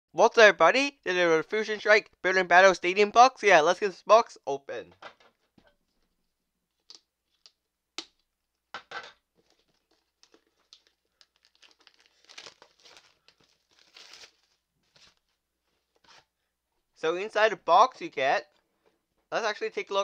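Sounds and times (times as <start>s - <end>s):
plastic wrap crinkling and snapping: 9.4s - 16.2s.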